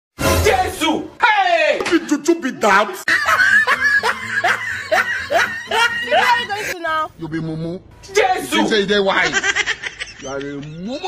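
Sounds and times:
person laughing: 0:03.1 - 0:07.4, 0:09.2 - 0:11.0.

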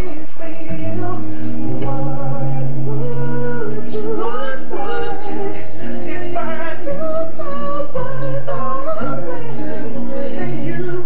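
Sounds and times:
male a cappella group singing: 0:00.0 - 0:11.0
low sung bass note: 0:00.7 - 0:04.3.

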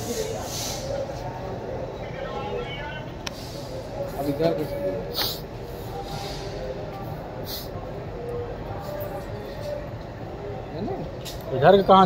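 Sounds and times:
indistinct voices: 0:00.0 - 0:12.0
short hiss: 0:05.1 - 0:05.4.

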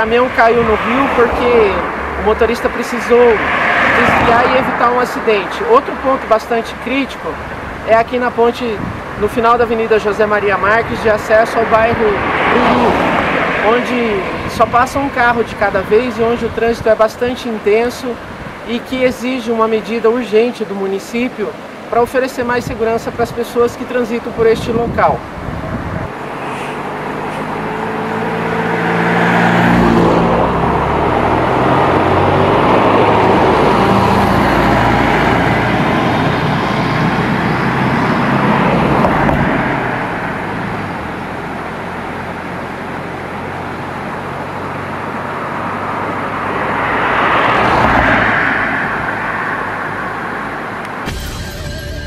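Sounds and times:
vehicle passing: 0:00.0 - 0:16.6, 0:25.2 - 0:52.0
truck engine and tyre noise: 0:00.0 - 0:20.5, 0:21.2 - 0:52.0.

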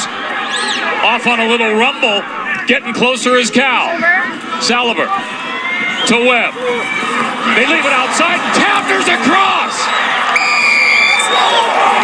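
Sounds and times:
stadium crowd cheering: 0:00.0 - 0:12.0
referee whistle blast: 0:09.8 - 0:11.7.

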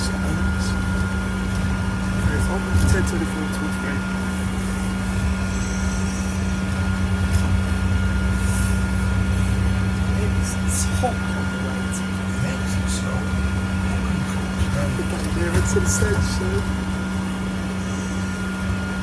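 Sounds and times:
bus cabin drone and road rumble: 0:00.0 - 0:19.0
thin constant whine: 0:00.0 - 0:19.0.

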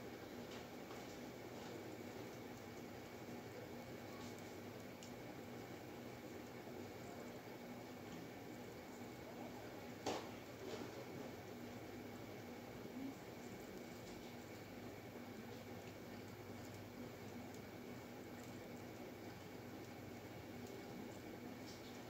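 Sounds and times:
faint steady hiss: 0:00.0 - 0:22.0
thin steady whine: 0:00.0 - 0:22.0.

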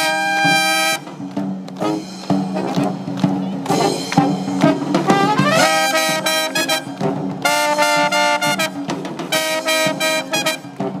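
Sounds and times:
brass band playing chords: 0:00.0 - 0:11.0.

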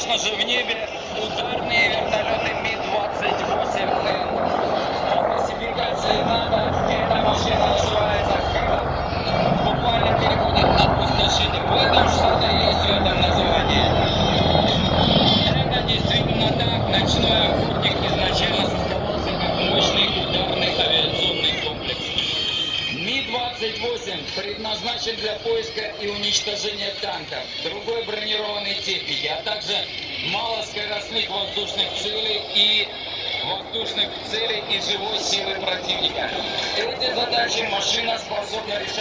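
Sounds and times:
helicopters passing overhead: 0:00.0 - 0:39.0
voices: 0:00.0 - 0:39.0.

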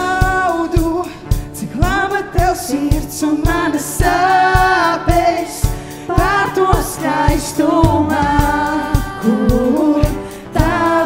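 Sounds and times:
women singing in parts: 0:03.3 - 0:11.0
worship band playing: 0:05.1 - 0:11.0
kick drum beat: 0:07.7 - 0:09.7.

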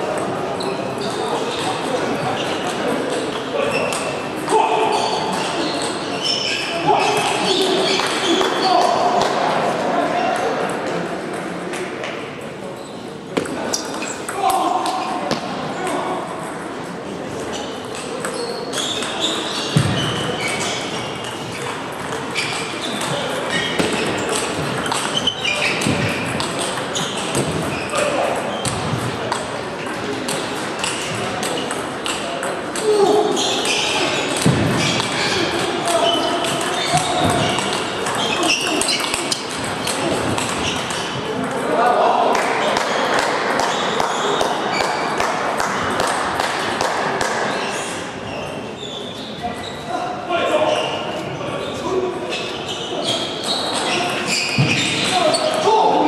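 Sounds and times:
voices in background: 0:00.0 - 0:56.0.

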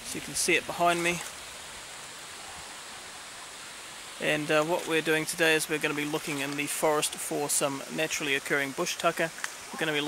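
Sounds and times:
river running over stones: 0:00.0 - 0:10.0.

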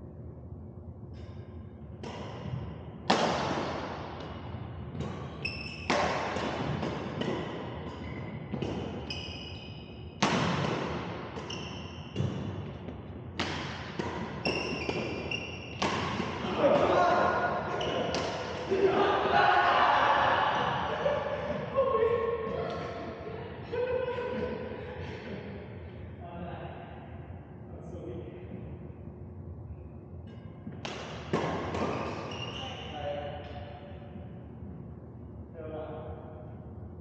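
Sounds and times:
court shoes squeaking: 0:01.1 - 0:18.8, 0:29.8 - 0:34.8
rackets striking shuttlecock: 0:02.0 - 0:09.5, 0:10.1 - 0:16.9, 0:17.6 - 0:18.7, 0:30.3 - 0:32.5
voices: 0:16.3 - 0:27.0.

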